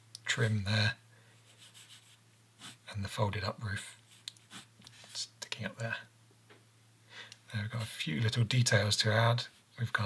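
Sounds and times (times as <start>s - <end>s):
pen scratching on paper: 1.6s - 2.8s.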